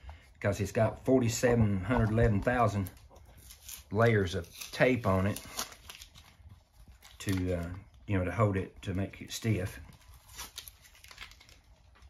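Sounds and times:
tape crinkling: 1.2 - 12.0
tape tearing: 2.6 - 7.7, 9.9 - 12.0.

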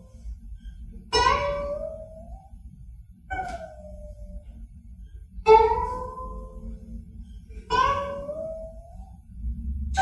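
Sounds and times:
plucked zither note ringing: 1.1 - 2.5, 5.4 - 6.7, 7.7 - 9.2.

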